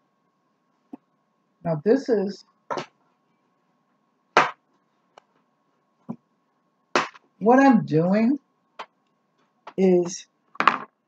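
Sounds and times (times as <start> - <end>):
faint high-pitched hum: 0.0 - 11.0
sharp knock: 4.4 - 4.6, 7.0 - 7.2.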